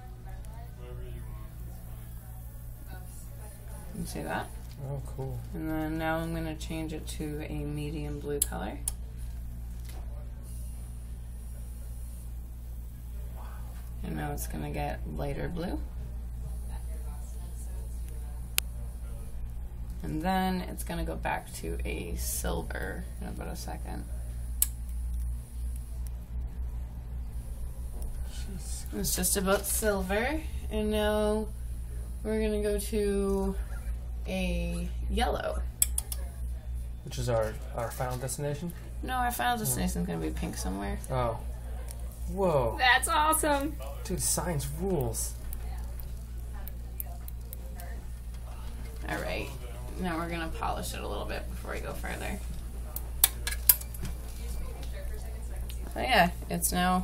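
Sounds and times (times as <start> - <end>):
low steady hum: 0.0 - 57.0.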